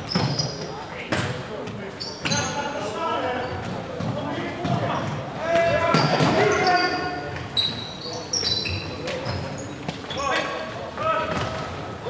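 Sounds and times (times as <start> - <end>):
shoes squeaking on wooden floor: 0.0 - 1.0, 1.6 - 5.1, 5.7 - 10.7.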